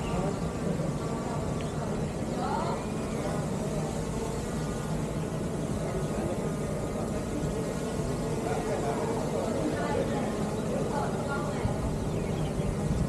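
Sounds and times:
drone propellers humming: 0:00.0 - 0:13.0.

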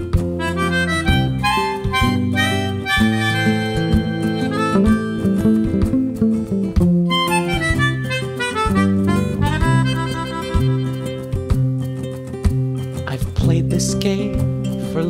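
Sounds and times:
melodica melody: 0:00.0 - 0:06.4, 0:07.0 - 0:11.8
acoustic guitar: 0:00.0 - 0:15.0
bass ukulele low notes: 0:00.0 - 0:15.0.

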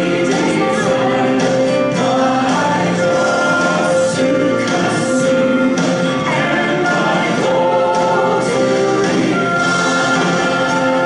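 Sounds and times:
group of voices singing: 0:00.0 - 0:11.0.

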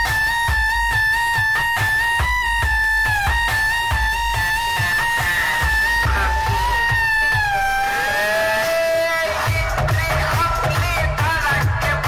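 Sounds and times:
high lead synth melody: 0:00.0 - 0:10.1
heavy bass beats: 0:00.0 - 0:12.0
loud dance music: 0:00.0 - 0:12.0.

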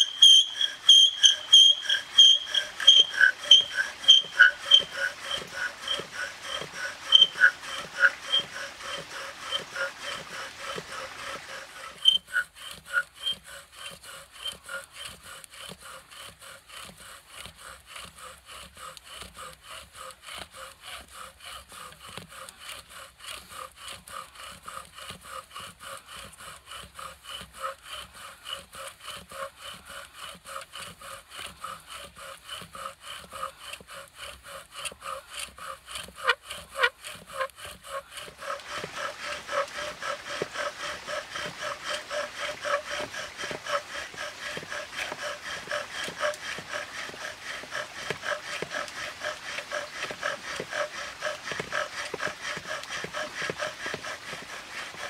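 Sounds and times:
bow drill squeaking: 0:00.0 - 0:55.0
bow drill wood grinding: 0:00.0 - 0:55.0.

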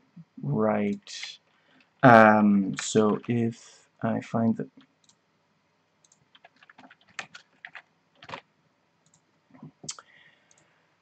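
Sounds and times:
faint keyboard typing: 0:00.8 - 0:03.5, 0:06.0 - 0:10.8.

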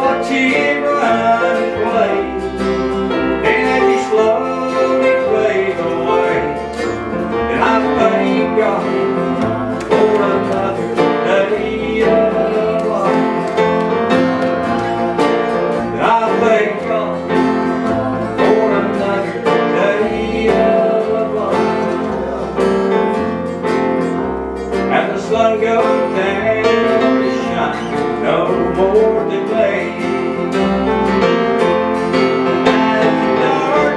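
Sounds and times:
man singing: 0:00.0 - 0:23.6, 0:24.8 - 0:31.3, 0:32.1 - 0:33.9
acoustic guitars strumming: 0:00.0 - 0:33.9
bass notes: 0:00.0 - 0:33.9.

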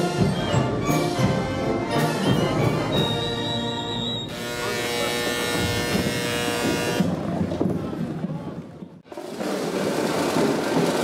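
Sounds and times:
brass band sustained chord: 0:00.0 - 0:07.1.

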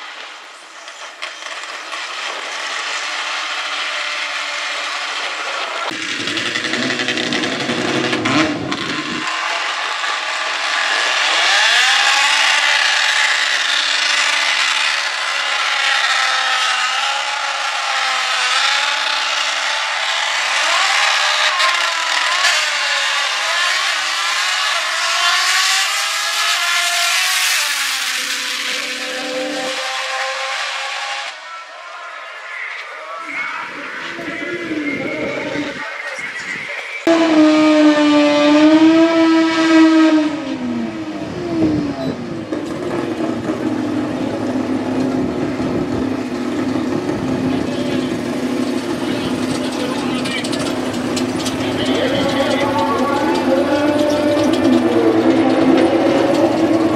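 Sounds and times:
race car engines revving: 0:00.0 - 0:56.9
deeper engine rumble: 0:37.0 - 0:56.9.

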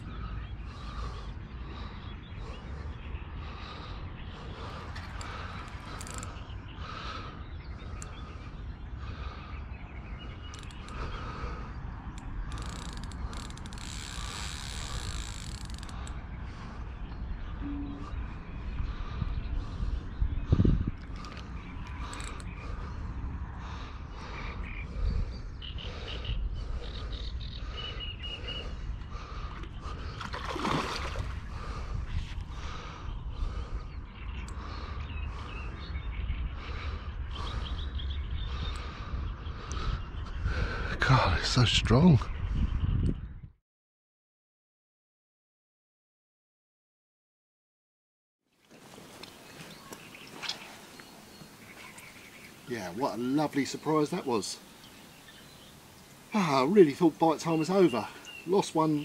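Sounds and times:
fishing reel clicking: 0:06.0 - 0:06.3, 0:12.5 - 0:16.0.

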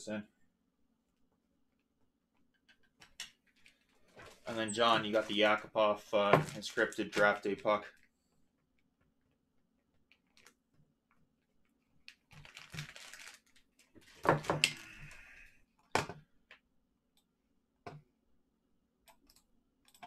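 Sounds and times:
computer mouse and keyboard clicks: 0:19.0 - 0:20.0.

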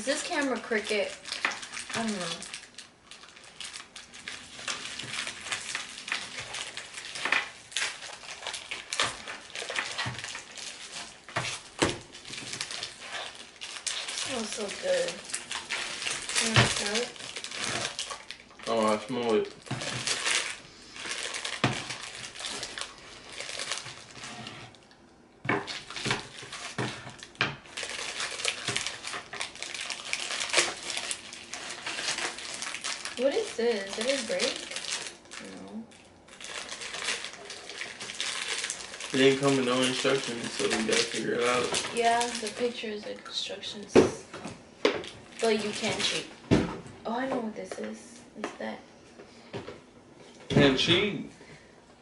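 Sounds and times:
plastic packaging crinkling and tearing: 0:00.0 - 0:46.4.

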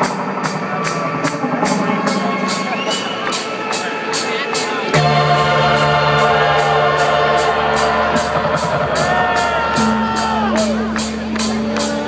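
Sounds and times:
held keyboard chords: 0:00.0 - 0:12.0
sustained bass note: 0:05.0 - 0:11.8.

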